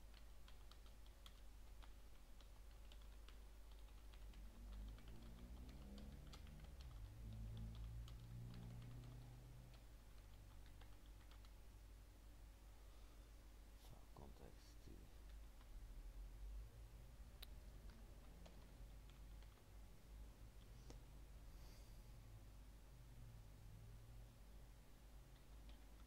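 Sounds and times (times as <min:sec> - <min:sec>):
keyboard key clicks: 0:00.0 - 0:11.6.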